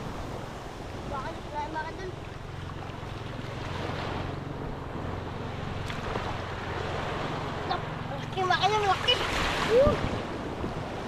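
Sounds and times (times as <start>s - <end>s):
small waves washing on sand: 0.0s - 11.0s
wind buffeting microphone: 0.0s - 11.0s.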